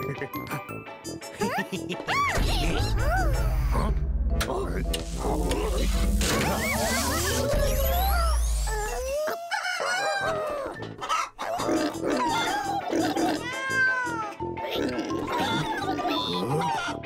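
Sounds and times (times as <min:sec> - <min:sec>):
cartoon background music: 0:00.0 - 0:17.0
squeaky cartoon vocalizations: 0:06.3 - 0:17.0.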